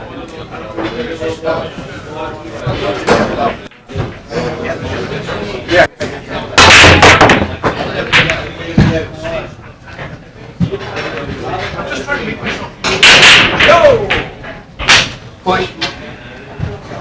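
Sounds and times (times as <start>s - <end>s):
cue ball cracking into racked balls: 6.6s - 8.5s, 12.8s - 15.2s
billiard balls clicking: 6.6s - 8.6s.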